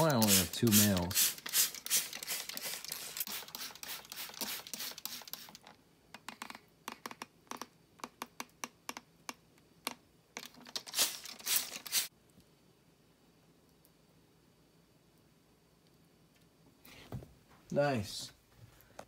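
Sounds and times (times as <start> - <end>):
spray bottle squirts: 0.2 - 5.6, 10.8 - 12.1.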